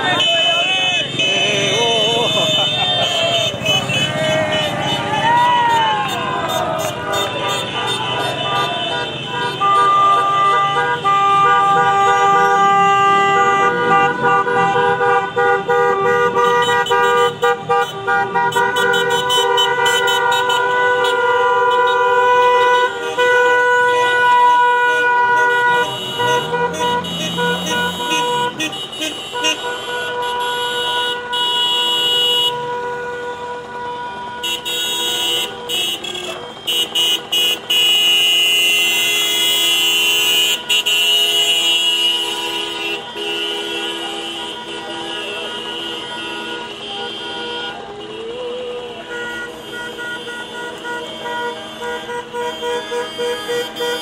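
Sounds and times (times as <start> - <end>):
car horns honking: 0.0 - 54.0
passing car engine: 25.5 - 28.6.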